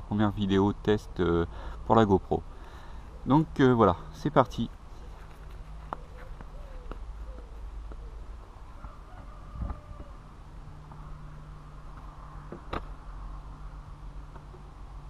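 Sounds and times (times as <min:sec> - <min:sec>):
bird chirps: 0:04.3 - 0:08.4.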